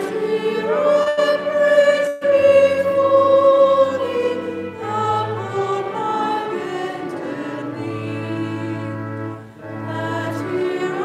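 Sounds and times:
congregation singing a hymn: 0.0 - 11.0.

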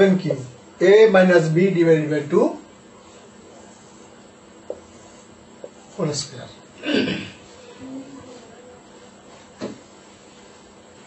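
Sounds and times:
marker pen on whiteboard: 2.4 - 6.6, 7.4 - 11.0.

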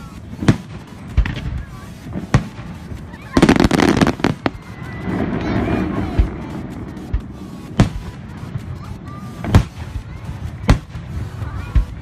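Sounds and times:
fireworks crackling: 0.0 - 12.0
fireworks bangs: 0.3 - 8.4.

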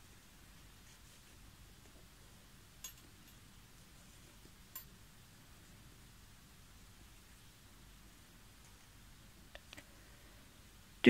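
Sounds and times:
faint sharp clicks: 9.5 - 9.9.

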